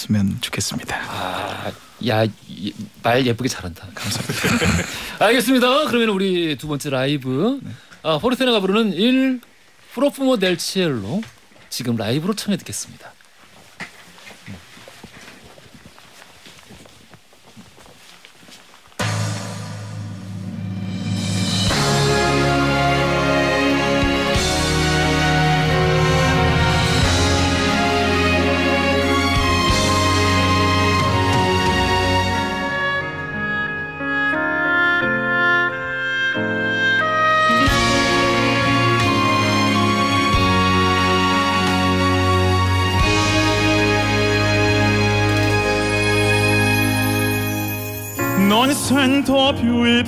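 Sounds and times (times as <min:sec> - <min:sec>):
knocks and shuffling of people: 0:00.0 - 0:19.1
sustained instrumental chords: 0:19.0 - 0:50.0.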